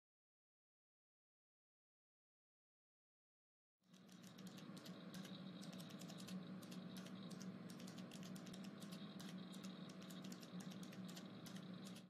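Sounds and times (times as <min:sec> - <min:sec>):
low steady hum: 0:03.9 - 0:12.0
keyboard key clicks: 0:04.0 - 0:12.0.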